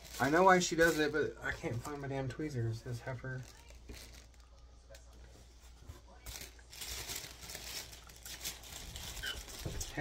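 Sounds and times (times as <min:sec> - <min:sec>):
packaging crinkling: 0:00.0 - 0:02.3, 0:03.2 - 0:05.2, 0:06.1 - 0:10.0.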